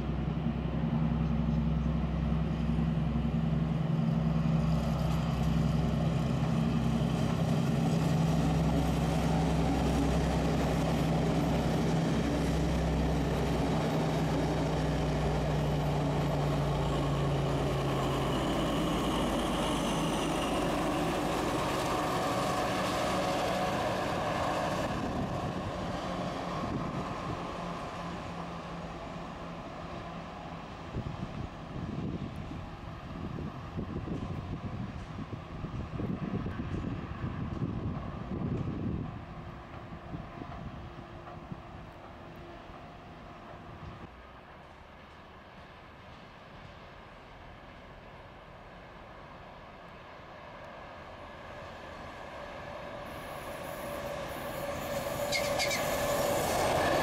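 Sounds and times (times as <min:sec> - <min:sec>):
diesel locomotive engine drone: 0:00.0 - 0:57.0
train rushing past: 0:00.0 - 0:57.0.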